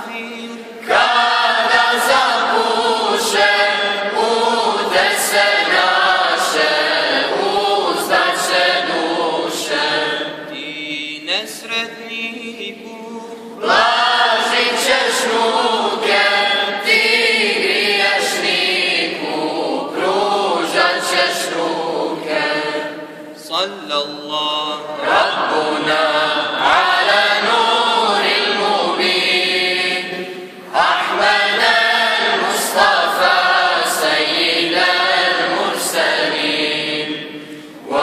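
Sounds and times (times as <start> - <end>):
choir singing a hymn in unison: 0.0 - 38.0.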